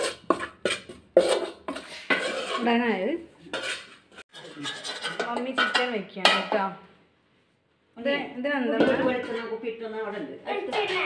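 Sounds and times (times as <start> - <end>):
spoon scraping metal pan: 0.0 - 6.6, 8.8 - 11.0.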